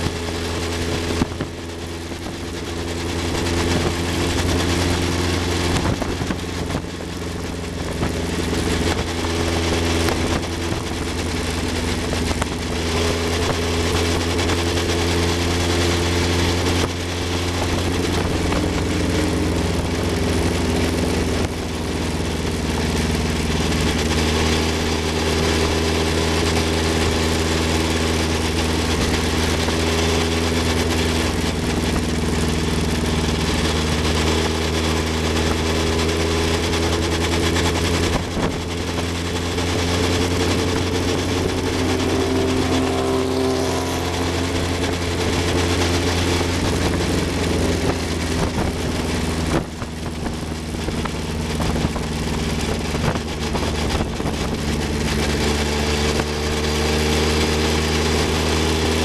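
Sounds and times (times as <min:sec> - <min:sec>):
racing car engine running: 0:00.0 - 0:59.0
wind buffeting microphone: 0:00.0 - 0:59.0.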